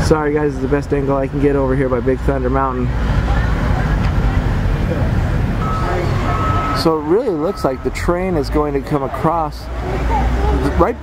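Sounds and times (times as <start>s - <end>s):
low rumbling background noise: 0.0s - 10.6s.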